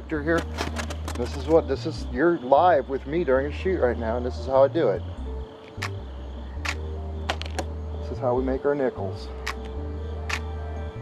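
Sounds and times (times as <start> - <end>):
camera shutter clicks: 6.6 - 6.8, 10.3 - 10.5.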